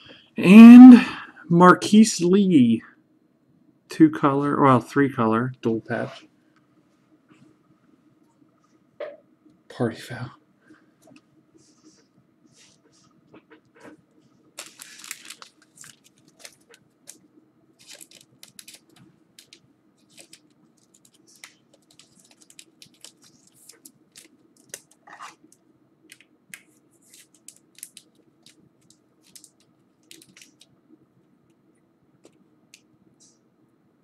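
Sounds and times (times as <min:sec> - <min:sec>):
faint steady hum: 0:00.0 - 0:34.0
card pack wrapper crinkling: 0:14.6 - 0:17.2, 0:17.8 - 0:30.7
cards clicking and rustling: 0:14.6 - 0:17.2, 0:17.8 - 0:30.7.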